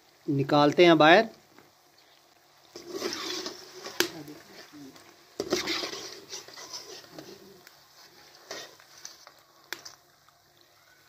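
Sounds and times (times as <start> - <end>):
oil sizzling: 0.0 - 11.0
metal skimmer scraping a pan: 2.7 - 4.7, 5.4 - 9.2.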